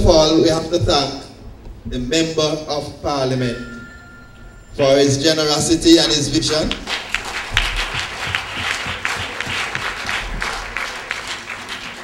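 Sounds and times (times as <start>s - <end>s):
audience applauding: 6.2s - 12.0s.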